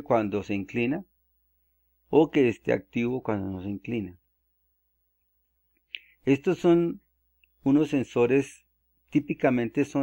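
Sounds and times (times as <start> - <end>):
man's voice: 2.1 - 4.2, 6.2 - 7.0, 7.6 - 10.0.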